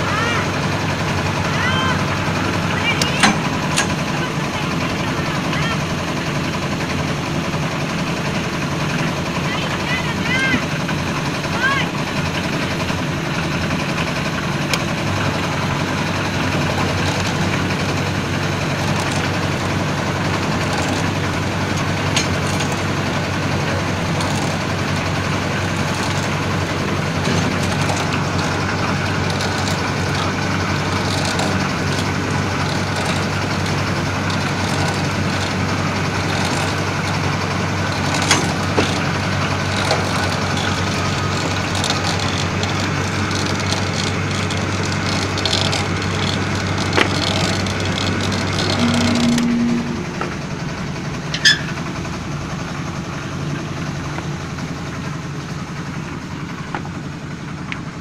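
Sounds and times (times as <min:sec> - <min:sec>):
cable hoist lifting: 0:00.0 - 0:58.0
concrete mixer engine running: 0:00.0 - 0:58.0.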